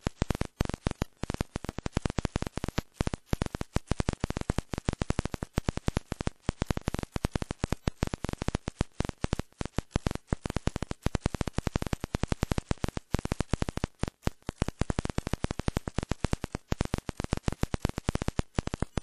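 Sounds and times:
rapid crackling clicks: 0.0s - 19.0s.

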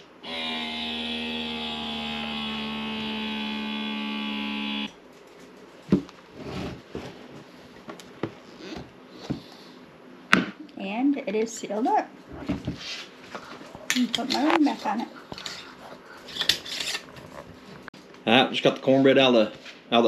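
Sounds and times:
vacuum sealer motor whine: 0.0s - 5.0s.

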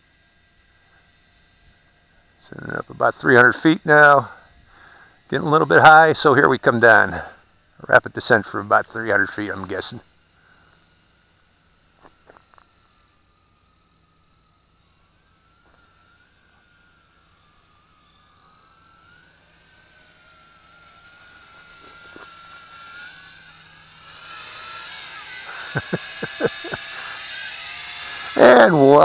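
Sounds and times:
drone propellers whining: 0.0s - 29.0s.

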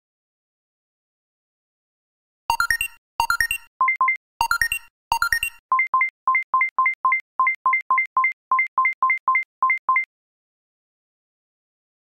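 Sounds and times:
two-tone electronic alert beeps: 2.5s - 10.1s.

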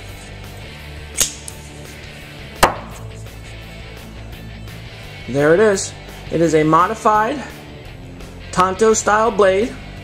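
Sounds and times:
background music: 0.0s - 10.0s
knife blade snapping open: 1.1s - 1.6s
knife stabbing into wood: 2.6s - 3.1s.

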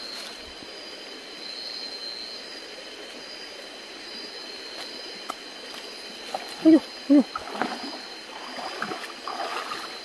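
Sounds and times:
night insects chorus: 0.0s - 10.0s
rustle: 0.0s - 10.0s.

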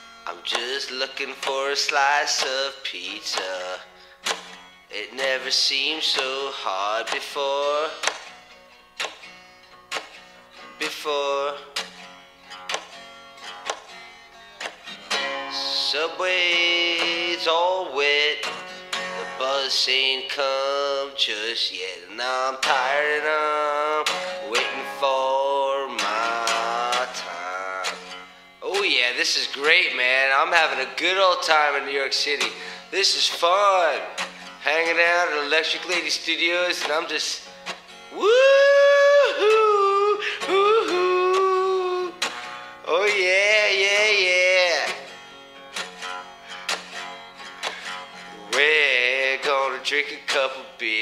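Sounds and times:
electric guitar strummed: 0.0s - 51.0s
man singing high held note: 19.4s - 27.9s, 38.1s - 42.2s.

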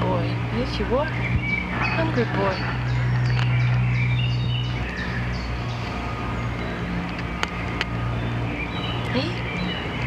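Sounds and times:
small birds chirping: 0.0s - 10.0s.

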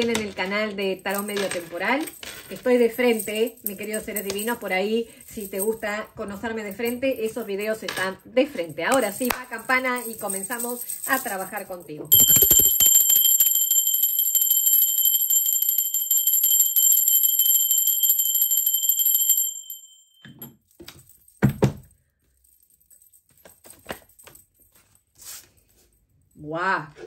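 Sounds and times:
brass hand bell ringing: 12.1s - 20.2s.

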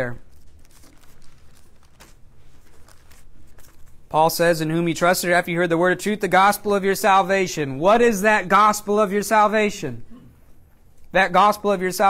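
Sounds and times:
pages being turned: 0.2s - 4.1s.

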